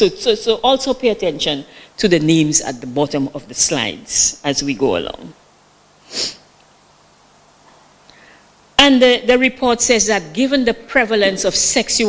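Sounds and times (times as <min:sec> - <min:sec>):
person sniffing: 0:06.0 - 0:06.5.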